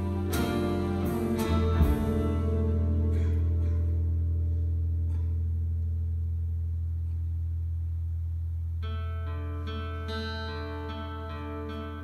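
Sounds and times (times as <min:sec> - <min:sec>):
guitar notes ringing: 0:00.0 - 0:07.0, 0:08.8 - 0:12.0.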